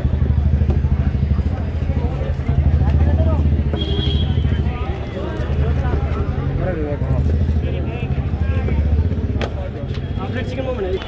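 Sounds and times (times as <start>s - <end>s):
faint street chatter: 0.0s - 11.0s
vehicle engine rumbling: 0.0s - 11.0s.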